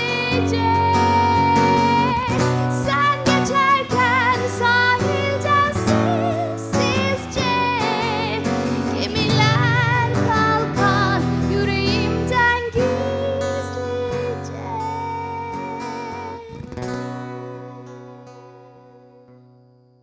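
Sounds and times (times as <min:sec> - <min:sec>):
woman singing without words: 0:00.0 - 0:19.2
acoustic guitar playing: 0:00.0 - 0:20.0.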